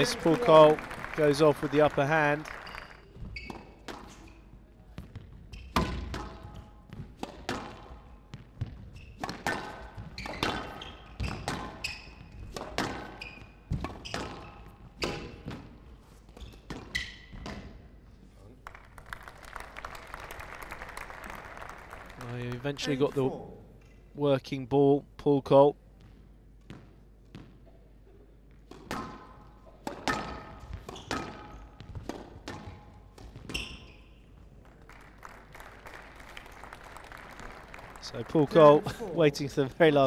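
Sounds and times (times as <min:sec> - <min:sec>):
crowd applauding: 0:00.0 - 0:03.1, 0:18.6 - 0:23.4, 0:34.7 - 0:39.5
shoe squeaks on court floor: 0:02.5 - 0:04.5, 0:05.4 - 0:06.1, 0:08.8 - 0:17.6, 0:30.6 - 0:32.0, 0:32.6 - 0:34.4
squash ball knocks: 0:28.7 - 0:33.5.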